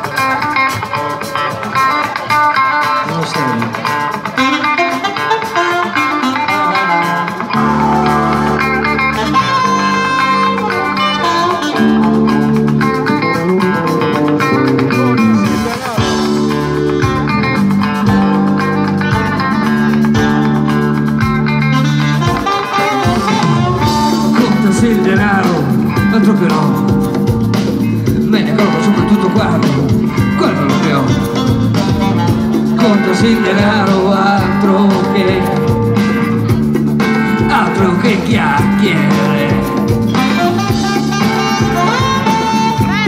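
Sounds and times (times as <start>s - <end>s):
electric guitar: 0.0s - 43.0s
live band music: 0.0s - 43.0s.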